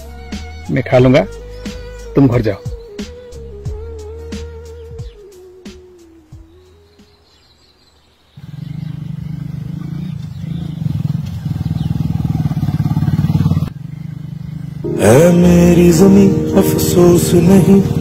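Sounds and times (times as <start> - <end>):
motorcycle engine running: 8.4 - 18.0.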